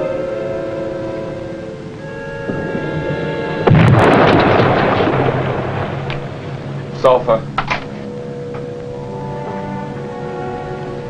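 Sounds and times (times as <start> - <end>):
background music with held notes: 0.0 - 11.0
underwater explosion: 2.4 - 7.6.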